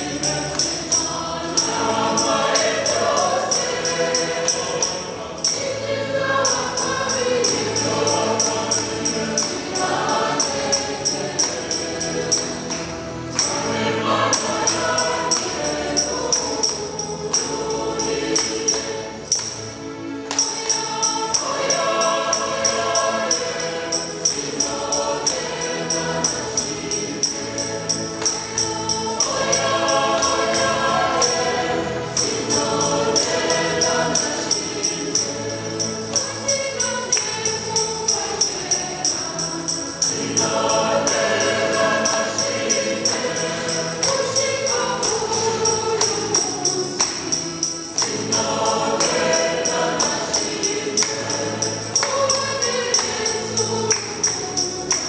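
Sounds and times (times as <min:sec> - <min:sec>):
choir singing gospel music: 0:00.0 - 0:55.0.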